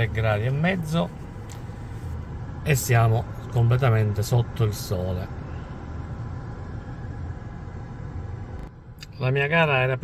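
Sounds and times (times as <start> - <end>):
low rumble and hiss in car cabin: 0.0 - 10.0.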